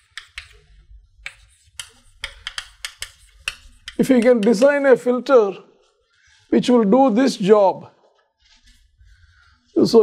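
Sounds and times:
chalk tapping on blackboard: 0.0s - 4.9s.

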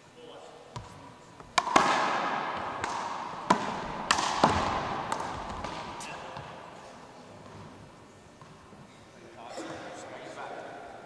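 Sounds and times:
hand slapping ball: 0.8s - 6.5s
rubber ball smacking wall and floor: 1.5s - 6.5s.

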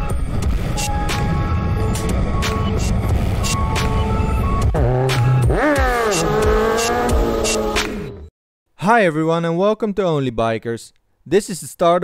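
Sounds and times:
motorcycle engine revving: 1.9s - 8.2s.

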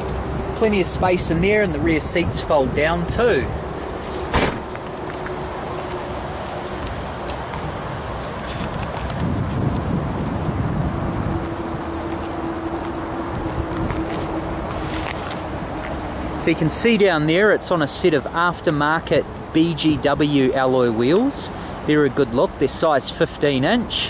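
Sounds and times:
high-pitched insect hiss: 0.0s - 24.0s
car hatch shutting thump: 4.2s - 4.8s.

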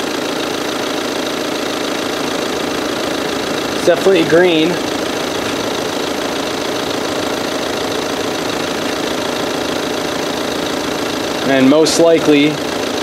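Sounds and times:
engine idling: 0.0s - 13.0s.

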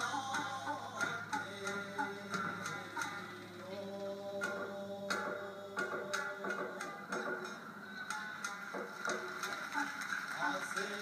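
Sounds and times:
plucked shamisen notes: 0.0s - 3.6s, 4.2s - 9.3s.

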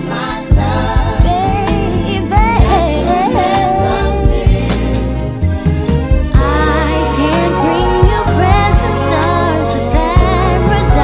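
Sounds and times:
neo-soul song with sung vocals: 0.0s - 11.0s.

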